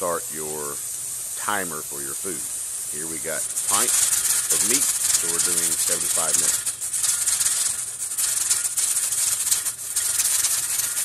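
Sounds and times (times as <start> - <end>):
pressure canner regulator hissing rattle: 0.0 - 11.0.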